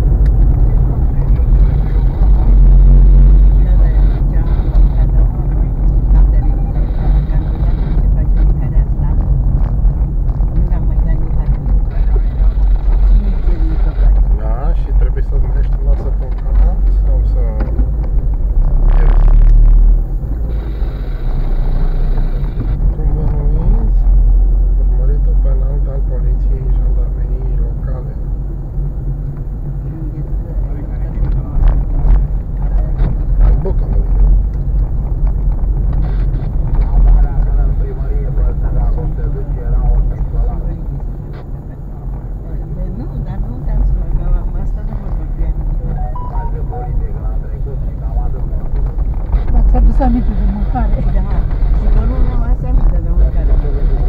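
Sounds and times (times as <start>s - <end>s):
car engine and tyres rumbling: 0.0s - 54.0s.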